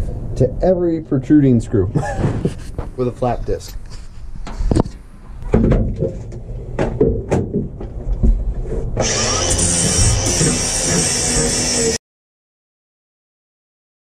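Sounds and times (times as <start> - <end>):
knocks and clatter of boards: 4.8 - 8.5
angle grinder grinding screws: 9.0 - 12.0.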